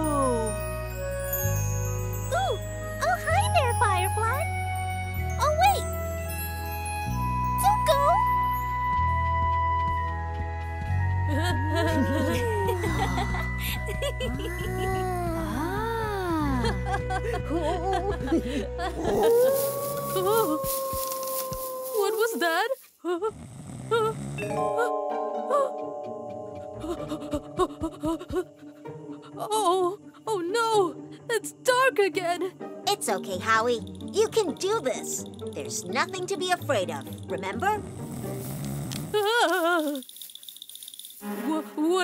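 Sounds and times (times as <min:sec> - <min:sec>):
eerie howl-like call: 0:19.0 - 0:22.2.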